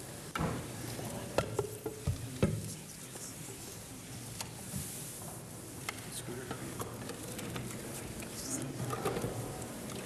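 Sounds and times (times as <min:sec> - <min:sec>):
low murmur of voices: 0:00.0 - 0:10.0
people moving about: 0:00.0 - 0:10.0.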